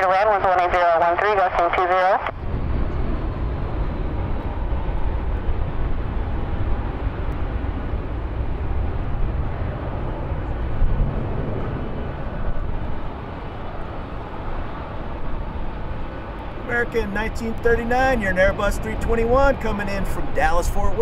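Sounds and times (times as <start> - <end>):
jet engines rumbling: 0.0 - 21.0.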